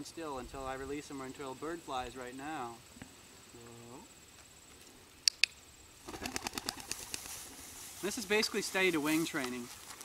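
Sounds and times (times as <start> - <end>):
sharp clicks: 5.2 - 5.6
pigeon wings flapping: 6.0 - 7.6.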